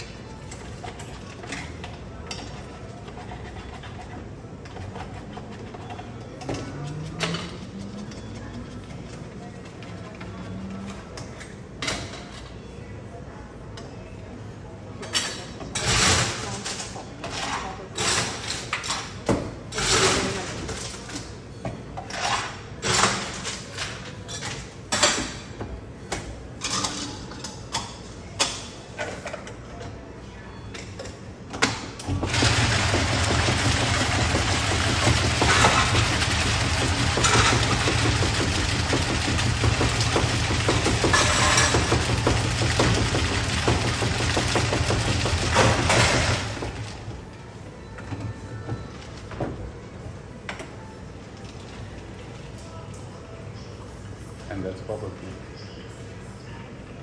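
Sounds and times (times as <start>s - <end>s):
cup shaker machine rattling: 32.1s - 47.0s.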